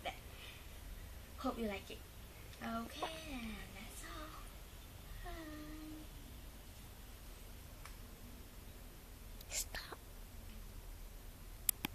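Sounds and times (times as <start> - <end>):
faint low hum: 0.0 - 11.9
person whispering: 9.4 - 10.0.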